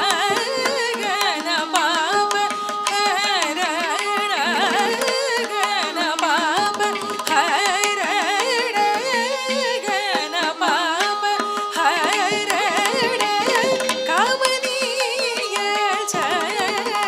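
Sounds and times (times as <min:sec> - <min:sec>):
mridangam drum strokes: 0:00.0 - 0:17.0
tanpura drone: 0:00.0 - 0:17.0
woman singing ornamented notes: 0:04.4 - 0:17.0.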